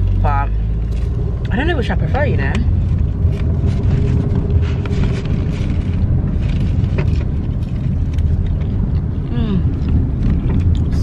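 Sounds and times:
car interior rumble: 0.0 - 11.0
paper bag crinkling: 3.3 - 8.6.

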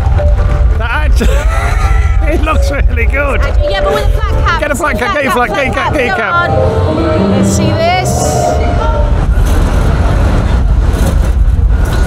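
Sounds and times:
city street noise rumble: 0.0 - 12.0.

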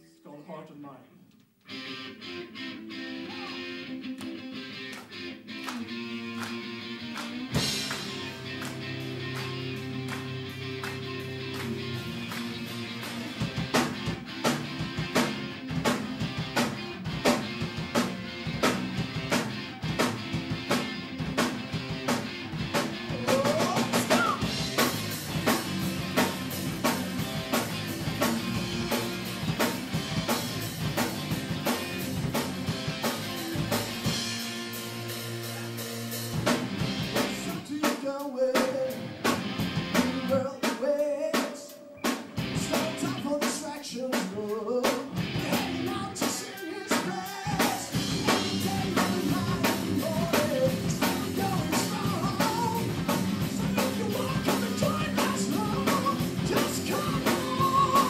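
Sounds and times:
live metal band playing: 1.7 - 37.7, 38.5 - 58.0
drum kit pounding: 7.5 - 43.6, 44.2 - 58.0.

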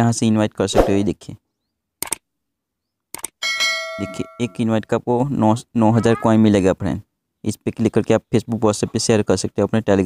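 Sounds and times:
bright bell ding: 3.4 - 4.7.

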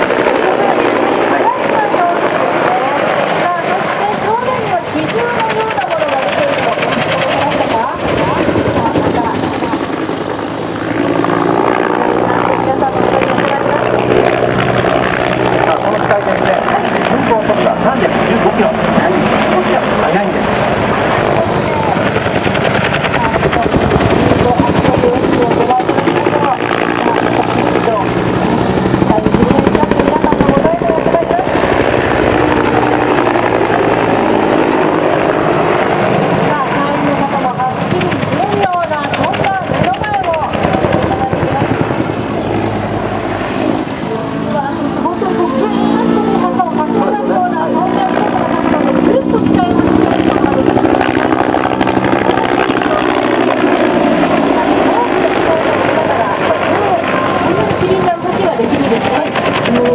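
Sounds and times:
helicopter rotor and engine: 0.0 - 59.9
people's voices: 0.0 - 59.9.

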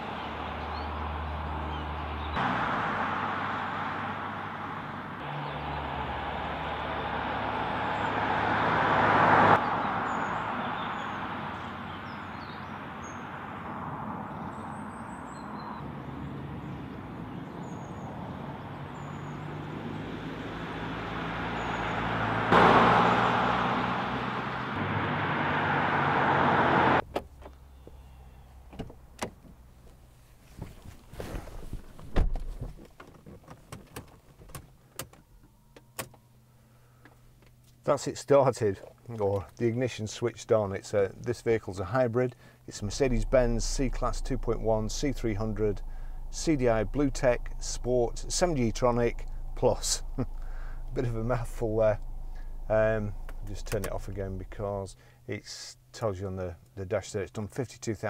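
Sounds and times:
birds chirping: 0.0 - 2.4, 4.4 - 8.7, 9.5 - 24.8, 27.5 - 28.8, 42.3 - 55.2
car driving past: 0.0 - 27.0, 42.9 - 55.2
clicks and knocks inside car: 30.6 - 35.3.

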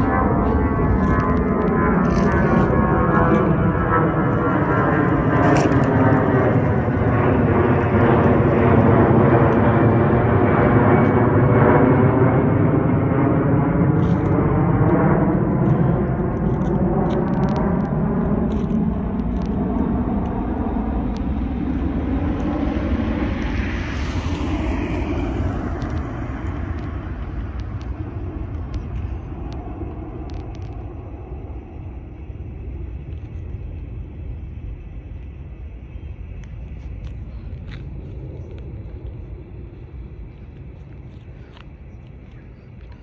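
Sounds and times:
jet engine rumble: 0.0 - 43.0.

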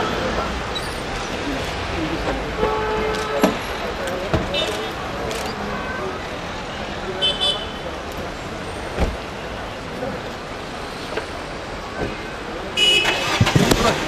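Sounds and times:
scattered voices: 0.0 - 14.0
street traffic: 0.0 - 14.0
car horn: 12.8 - 13.5.

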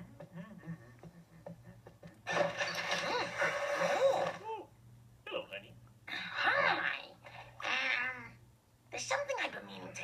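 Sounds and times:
bed springs creaking: 2.3 - 4.5.

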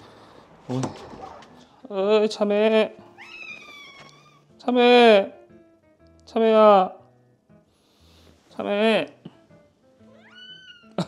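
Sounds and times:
cat meowing: 3.1 - 4.5, 10.1 - 11.0.

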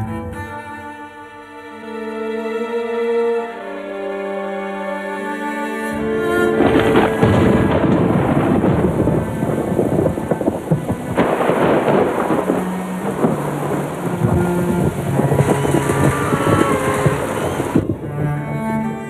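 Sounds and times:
low string music: 0.0 - 19.0
heavy rain pouring: 6.0 - 19.0
thunderclap: 6.4 - 18.2.

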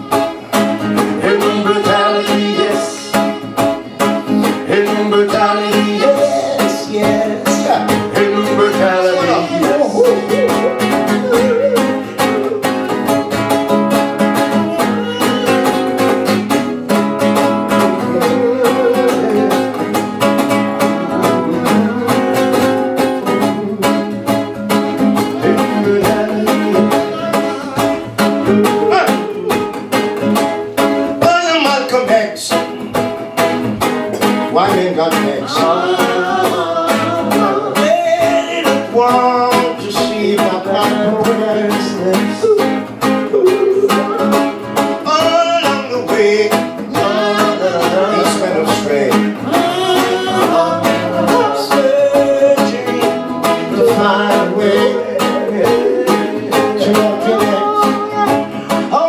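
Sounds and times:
voices: 0.0 - 13.4, 14.4 - 16.5, 17.7 - 30.0, 34.2 - 59.0
acoustic guitars strumming reggae: 0.0 - 59.0.

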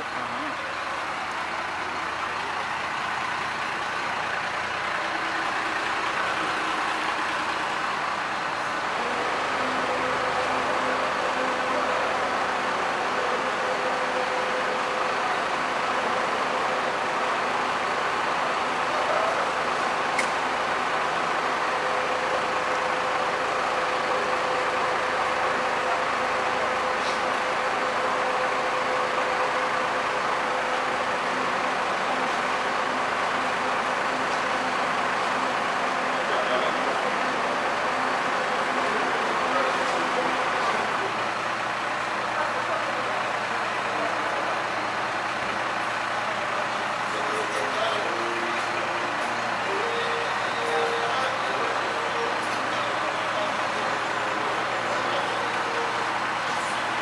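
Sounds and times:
bus diesel engine idling: 0.0 - 57.0
faint engine whine: 0.0 - 57.0.

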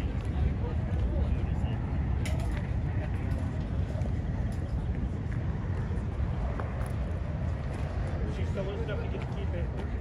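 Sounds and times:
faint voices chatting: 0.0 - 10.0
wind buffeting microphone: 0.0 - 10.0.

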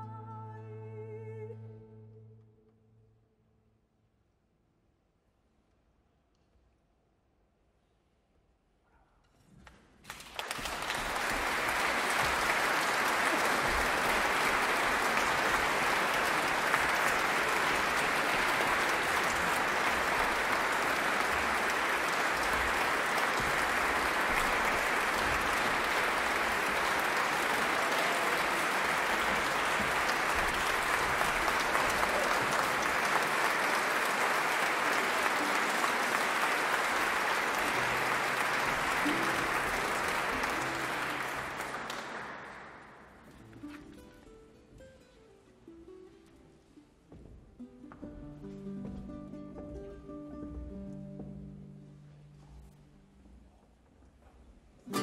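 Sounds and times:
audience applauding: 9.6 - 43.8.

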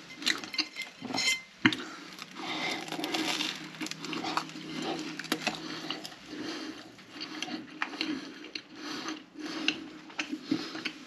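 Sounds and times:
crust crunching: 0.2 - 6.2
wet open-mouthed chewing: 1.6 - 11.0.

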